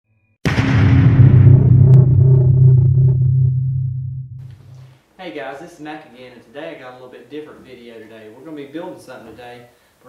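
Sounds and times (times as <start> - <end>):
deep steady rumble: 0.5 - 4.8.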